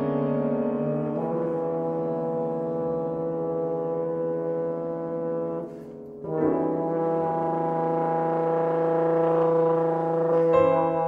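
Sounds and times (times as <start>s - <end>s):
french horn holding a low note: 0.0s - 11.0s.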